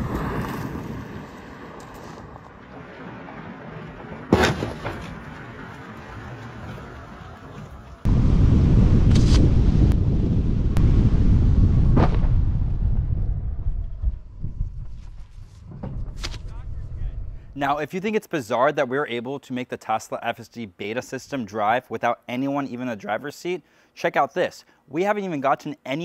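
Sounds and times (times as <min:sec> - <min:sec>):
wind buffeting microphone: 0:05.2 - 0:17.6.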